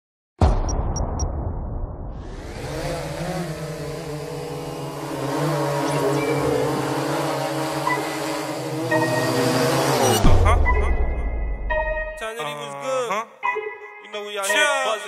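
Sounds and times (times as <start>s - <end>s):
drone propellers whirring: 2.1s - 10.8s.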